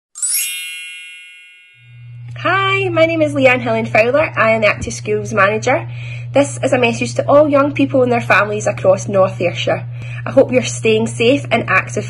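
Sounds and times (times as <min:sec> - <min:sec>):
bell-like chime: 0:00.1 - 0:02.3.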